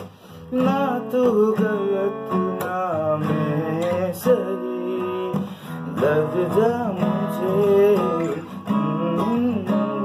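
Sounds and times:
acoustic guitar plucked and strummed: 0:00.0 - 0:10.0
man singing: 0:00.0 - 0:10.0.

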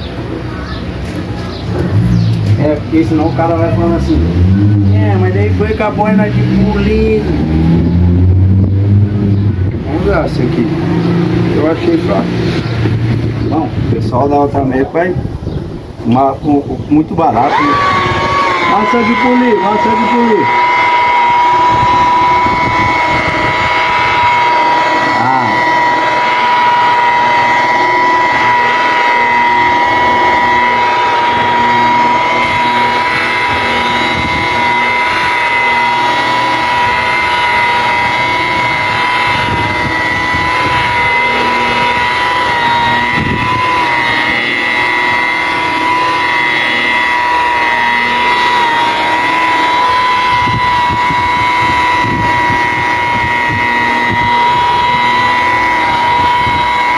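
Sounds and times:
electric polisher whining: 0:17.4 - 0:56.9.

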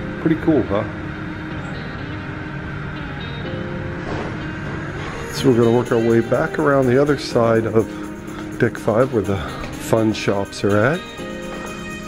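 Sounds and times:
low indoor rumble: 0:00.0 - 0:11.1
background music held notes: 0:00.0 - 0:12.0.

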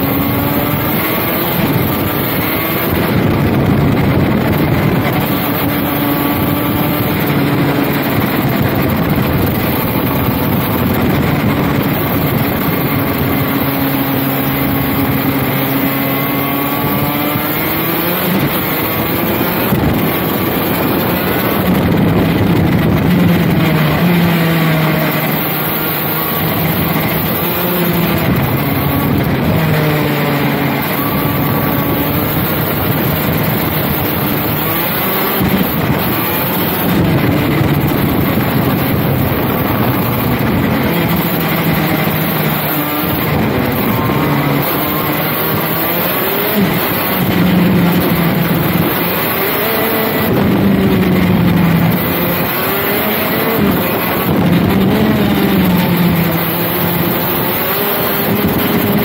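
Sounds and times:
kart two-stroke engine racing: 0:00.0 - 0:59.0.

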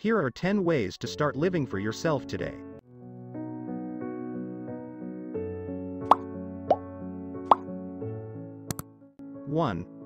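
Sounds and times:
soft background music: 0:00.0 - 0:10.0
pop sound effects: 0:06.0 - 0:06.9, 0:07.5 - 0:07.7.

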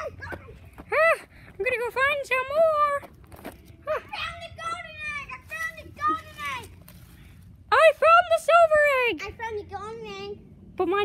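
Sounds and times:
child talking: 0:00.0 - 0:00.6, 0:03.9 - 0:06.8, 0:09.1 - 0:10.4.

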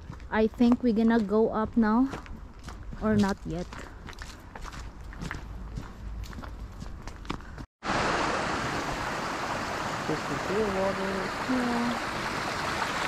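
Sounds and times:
footsteps on gravel: 0:00.0 - 0:07.7
stream rushing over rocks: 0:07.8 - 0:13.0.

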